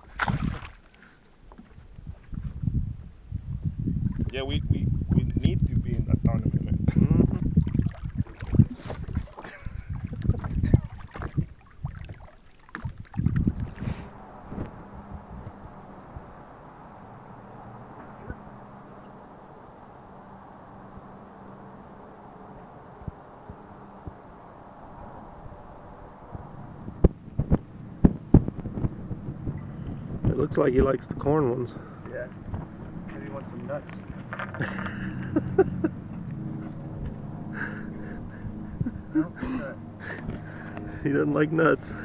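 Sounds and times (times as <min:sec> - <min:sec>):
wind buffeting microphone: 0:00.0 - 0:00.8, 0:01.7 - 0:42.0
splashes: 0:00.0 - 0:01.8, 0:07.3 - 0:14.3.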